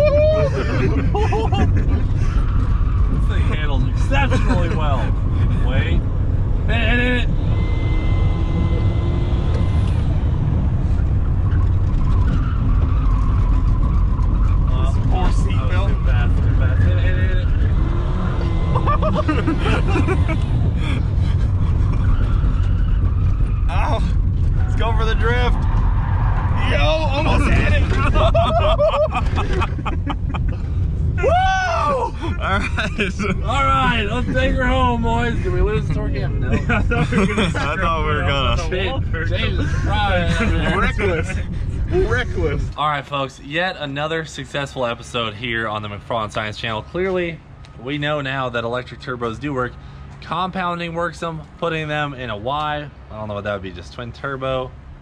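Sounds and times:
people talking: 0:00.0 - 0:02.0, 0:03.2 - 0:06.0, 0:06.7 - 0:07.3, 0:14.7 - 0:17.5, 0:23.7 - 0:25.6, 0:26.6 - 0:29.8, 0:31.2 - 0:54.7
people laughing: 0:00.0 - 0:02.4, 0:04.1 - 0:05.8, 0:18.6 - 0:21.0, 0:27.1 - 0:30.8, 0:31.9 - 0:34.8, 0:35.4 - 0:38.4, 0:39.4 - 0:42.5
engine and road rumble: 0:00.0 - 0:55.0.

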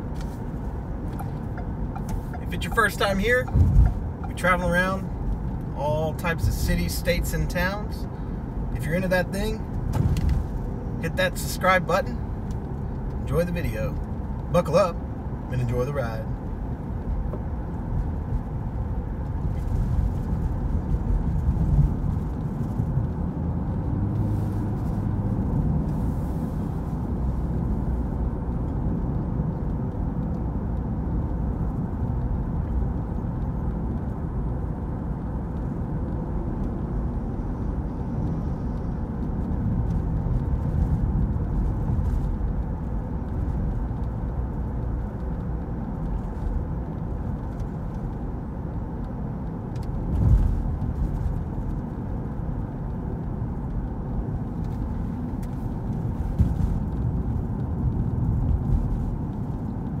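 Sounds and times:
road and engine noise in car: 0:00.0 - 1:00.0
low thump: 0:03.5 - 0:04.0, 0:09.8 - 0:10.4.

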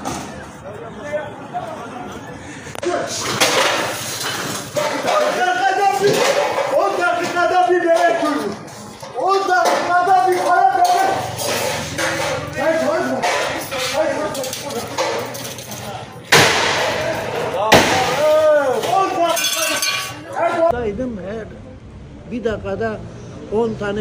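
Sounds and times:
glass panels smashing: 0:03.1 - 0:08.5, 0:09.2 - 0:20.3
men shouting: 0:09.2 - 0:14.4.

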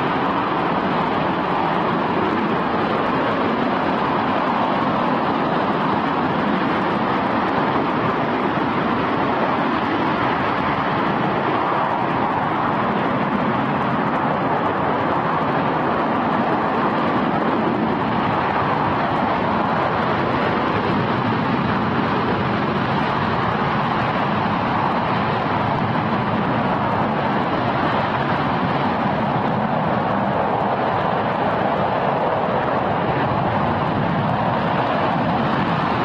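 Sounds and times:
rocket engine roaring: 0:00.0 - 0:36.0.

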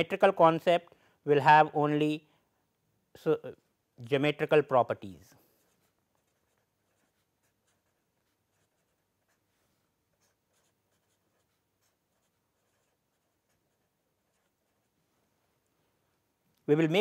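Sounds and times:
marker pen scratching on paper: 0:05.3 - 0:15.0.

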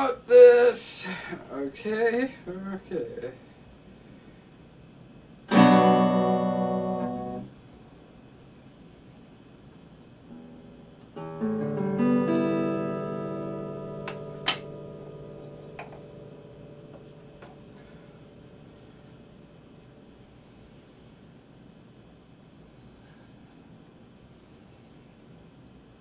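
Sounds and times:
acoustic guitar chords: 0:05.5 - 0:07.6, 0:10.3 - 0:20.1.

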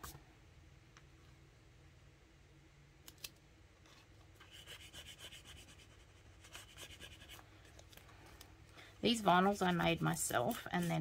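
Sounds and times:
rubbing and scratching on paper: 0:04.4 - 0:07.5, 0:09.0 - 0:11.0.

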